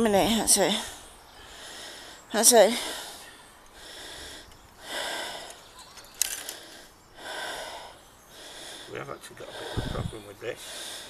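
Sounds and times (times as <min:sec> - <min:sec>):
man breathing heavily: 0:00.8 - 0:11.0.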